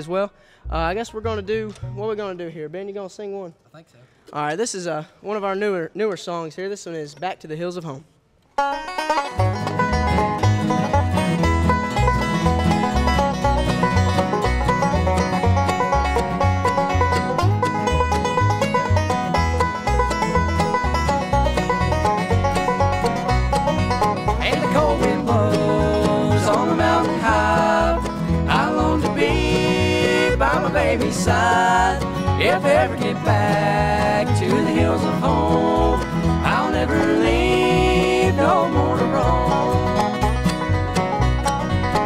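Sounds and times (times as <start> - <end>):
banjo rolls: 0.0 - 2.8, 8.6 - 42.0
acoustic guitar: 0.2 - 2.6, 8.5 - 42.0
mandolin: 0.6 - 2.6, 8.5 - 42.0
upright bass steady beat: 0.7 - 2.2
fiddle: 8.6 - 42.0.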